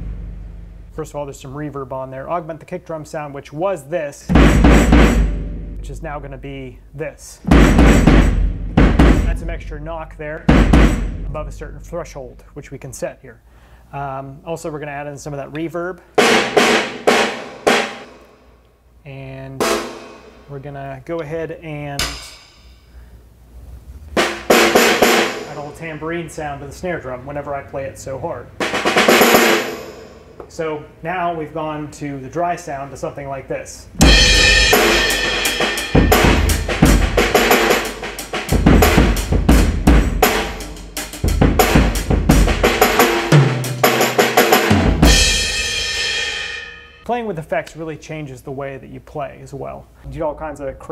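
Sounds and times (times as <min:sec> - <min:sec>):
drum hits with reverb: 0:00.0 - 0:01.1, 0:04.3 - 0:06.1, 0:07.4 - 0:12.5, 0:16.2 - 0:18.5, 0:19.6 - 0:20.5, 0:24.2 - 0:25.7, 0:34.0 - 0:47.0
tambourine sample: 0:34.0 - 0:39.3.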